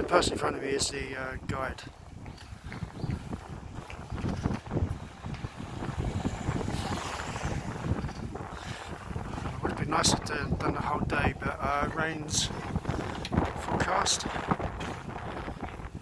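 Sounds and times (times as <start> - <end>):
wind buffeting microphone: 0.0 - 16.0
car passing by: 5.5 - 8.2.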